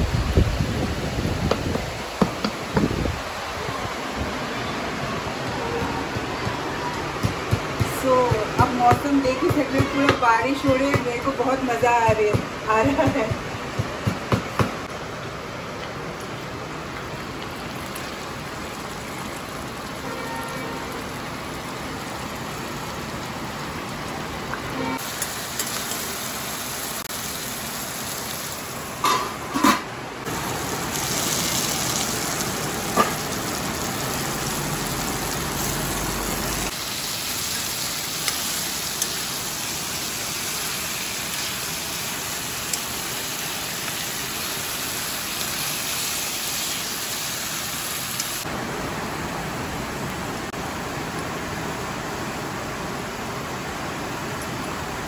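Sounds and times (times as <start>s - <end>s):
heavy rain: 0.0s - 13.8s, 14.7s - 55.0s.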